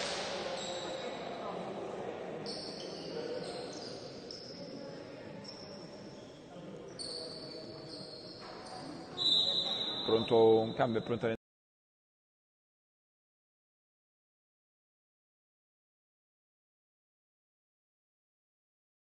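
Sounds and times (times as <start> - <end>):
indoor hall ambience: 0.0 - 11.4.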